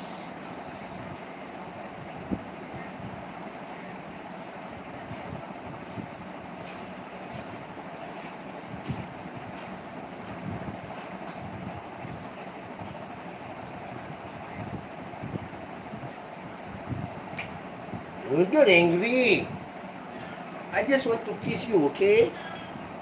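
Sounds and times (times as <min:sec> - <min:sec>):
fan hiss: 0:00.0 - 0:23.0.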